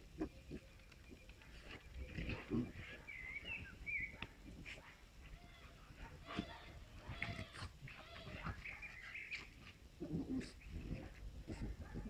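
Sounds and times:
dogs play-fighting: 0.1 - 12.0
low rough dog growls: 2.0 - 3.7, 10.0 - 12.0.

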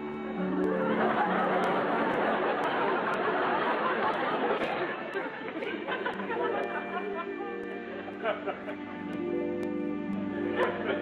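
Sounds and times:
crowd babble: 0.8 - 8.5.

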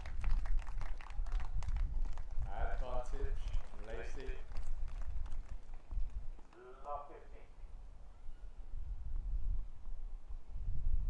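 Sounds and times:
person speaking: 6.5 - 7.6.

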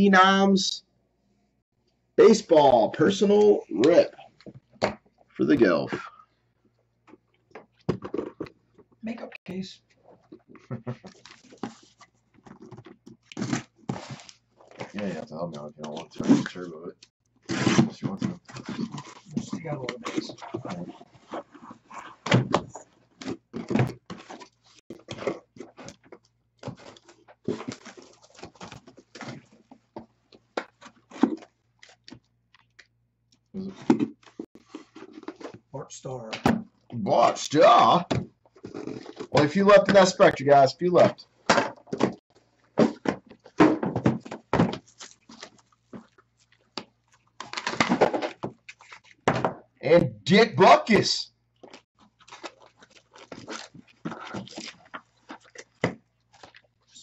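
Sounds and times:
cellophane crinkling and tearing: 23.2 - 29.7, 38.6 - 39.3, 44.7 - 49.2, 51.6 - 57.0
cardboard box thunks and knocks: 42.8 - 44.9.

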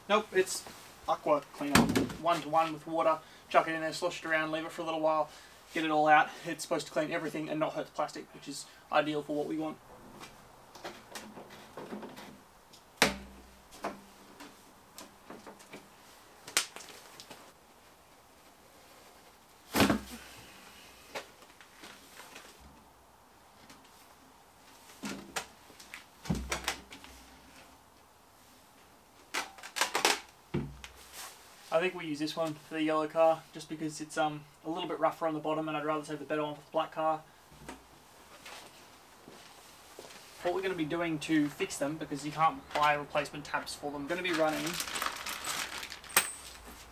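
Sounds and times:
dull thumps: 30.5 - 30.9.

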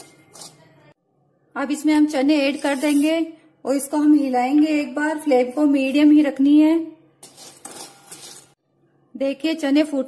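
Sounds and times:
spatula scraping salt in metal pan: 0.0 - 0.7, 2.4 - 3.2, 7.2 - 8.6.

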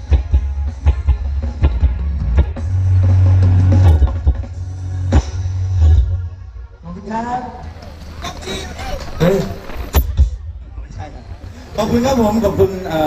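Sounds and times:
steady drum beat: 0.0 - 6.6
heavy bass: 0.0 - 7.7.

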